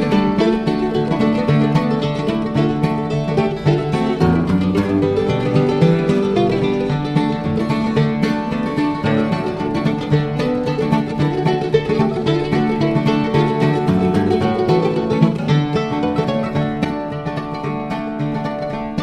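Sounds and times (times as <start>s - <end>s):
bluegrass string band playing: 0.0s - 19.0s.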